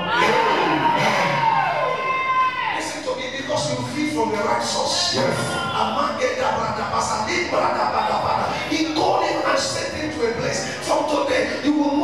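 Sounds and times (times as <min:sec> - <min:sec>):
congregation cheering and shouting: 0:00.0 - 0:06.8.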